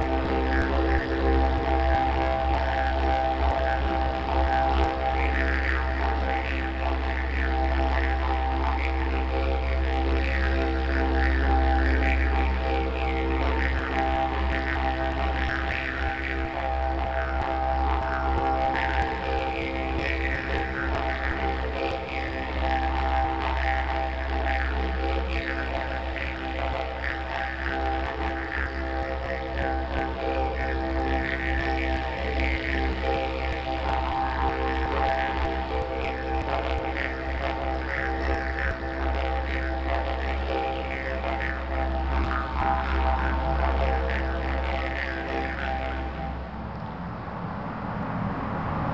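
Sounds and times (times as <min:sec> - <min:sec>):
didgeridoo drone: 0:00.0 - 0:48.9.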